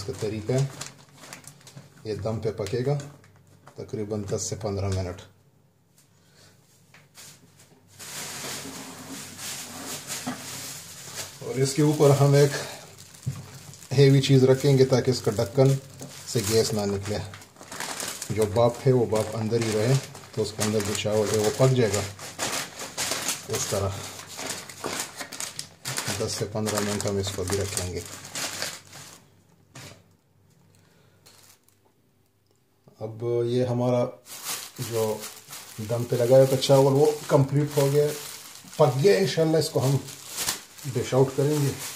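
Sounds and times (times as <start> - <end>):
plastic bag crinkling: 0.0 - 5.2, 7.0 - 30.0, 31.2 - 31.9, 34.2 - 41.9.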